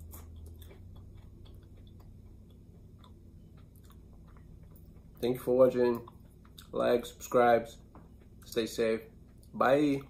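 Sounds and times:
person chewing: 0:00.0 - 0:09.6
low steady hum: 0:00.0 - 0:10.0.

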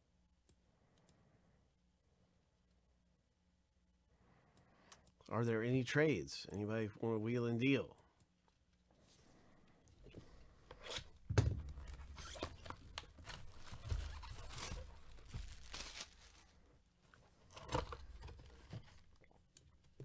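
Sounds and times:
plastic wrap tearing and crinkling: 0:11.8 - 0:16.6.

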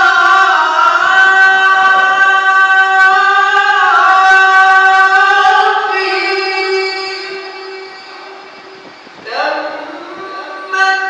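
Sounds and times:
man reciting through a microphone: 0:00.0 - 0:11.0.

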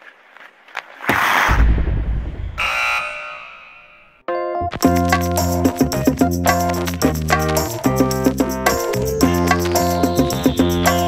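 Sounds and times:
deep low boom: 0:01.5 - 0:02.6.

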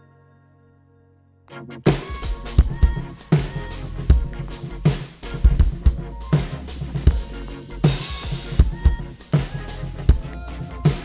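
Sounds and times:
bass and keyboard backing track: 0:01.5 - 0:11.0
kick drum and snare strokes: 0:01.9 - 0:10.3.

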